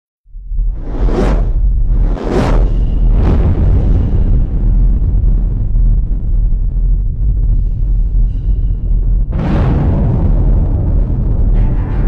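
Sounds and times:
deep low rumble: 0:00.2 - 0:12.0
cinematic whoosh: 0:00.4 - 0:12.0.

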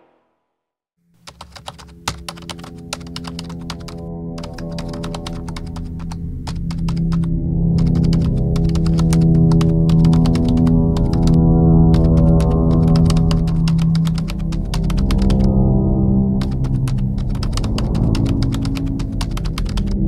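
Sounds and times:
keyboard typing clicks: 0:01.3 - 0:11.4, 0:12.0 - 0:15.5, 0:16.4 - 0:20.0
held music drone: 0:01.8 - 0:20.0.

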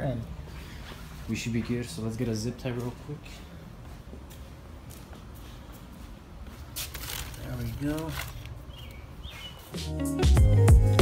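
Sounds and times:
footsteps and handling knocks: 0:02.6 - 0:09.7
high chirps: 0:08.6 - 0:10.7.

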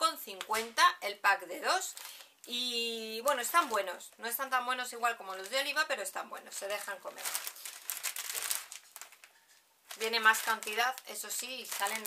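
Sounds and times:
plastic bag crinkling: 0:01.6 - 0:12.0.

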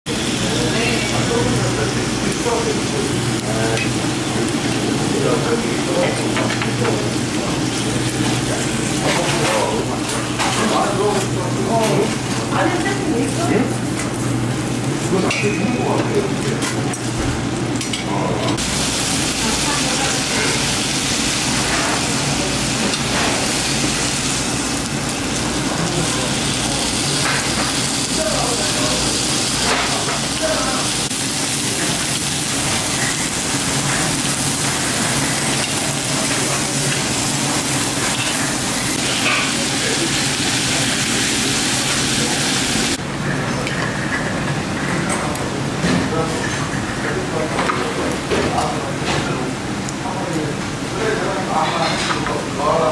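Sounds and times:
meat sizzling on a grill: 0:00.1 - 0:17.0, 0:18.5 - 0:43.0.

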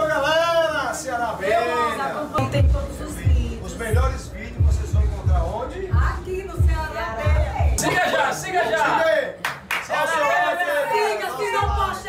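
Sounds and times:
group of voices: 0:06.8 - 0:12.0
sharp hand claps: 0:09.4 - 0:10.1.

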